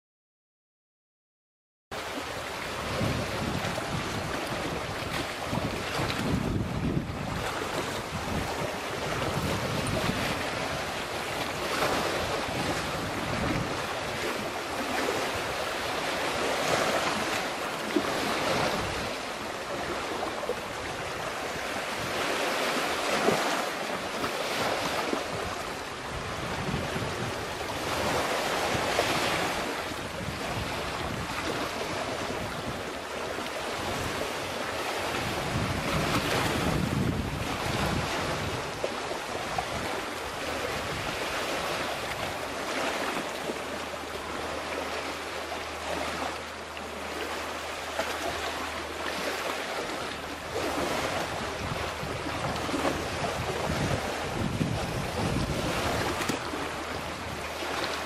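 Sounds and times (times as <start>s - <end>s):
sea waves on rocky shore: 2.0s - 58.0s
wind buffeting microphone: 2.2s - 43.6s, 48.2s - 58.0s.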